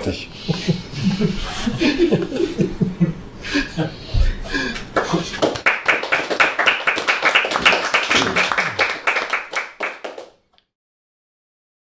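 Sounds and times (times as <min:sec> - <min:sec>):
audience applause: 0:05.0 - 0:10.3.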